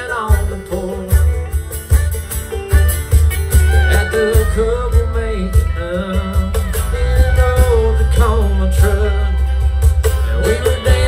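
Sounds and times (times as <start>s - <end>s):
acoustic guitar: 0.0s - 11.0s
country band playing: 0.0s - 11.0s
electric bass: 0.0s - 11.0s.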